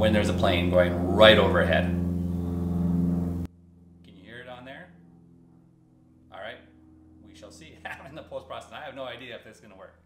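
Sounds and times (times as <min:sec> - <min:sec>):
small plane engine drone: 0:00.0 - 0:10.0.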